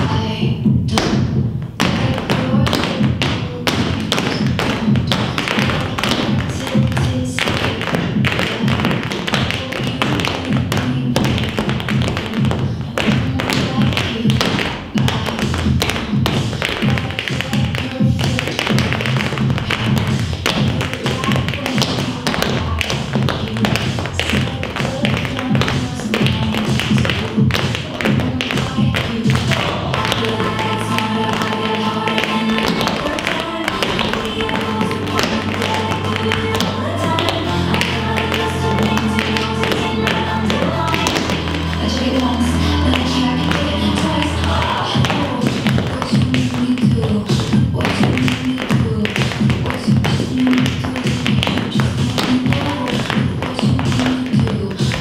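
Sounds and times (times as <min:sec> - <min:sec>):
tap shoes clicking on stage: 0:00.0 - 0:42.3, 0:42.9 - 0:55.0
pop song with heavy bass: 0:00.0 - 0:55.0.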